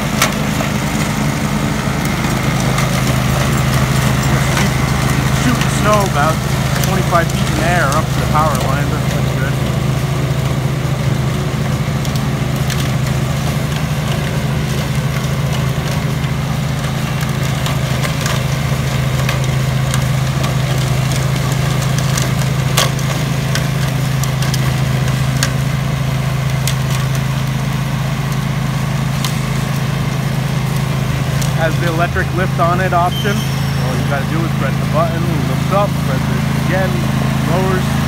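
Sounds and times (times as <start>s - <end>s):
riding mower engine running: 0.0s - 38.0s
snowblower throwing snow: 0.0s - 38.0s.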